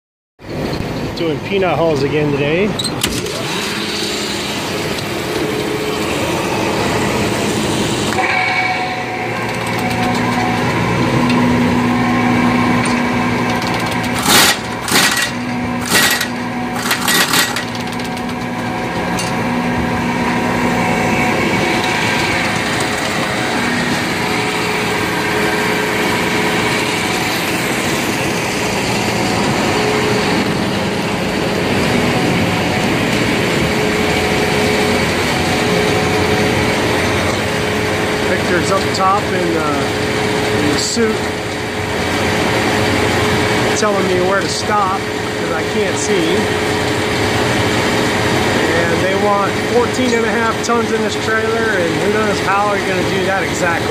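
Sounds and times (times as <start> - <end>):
electric motor humming: 3.0 - 52.7.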